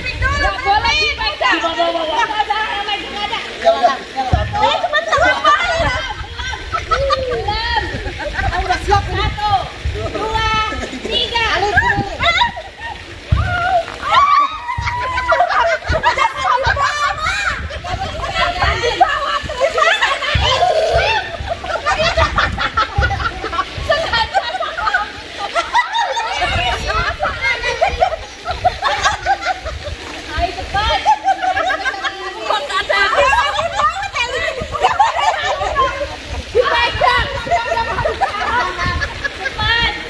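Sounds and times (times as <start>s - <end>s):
women shouting and squealing: 0.0s - 40.0s
women laughing: 3.6s - 40.0s.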